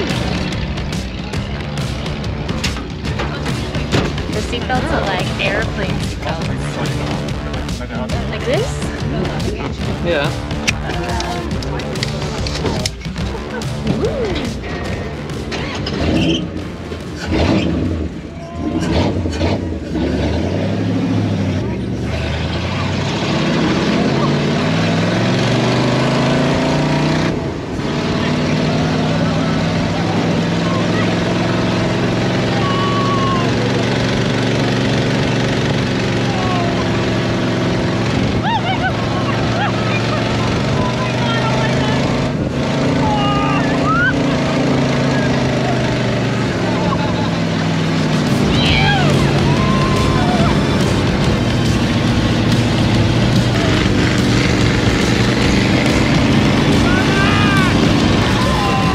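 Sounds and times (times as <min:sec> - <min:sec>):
dune buggy engine revving: 0:00.0 - 0:58.9
riders shouting excitedly: 0:29.9 - 0:33.8, 0:36.2 - 0:37.2, 0:38.2 - 0:42.2, 0:42.9 - 0:44.4, 0:45.0 - 0:47.3, 0:48.4 - 0:51.2, 0:56.6 - 0:58.9.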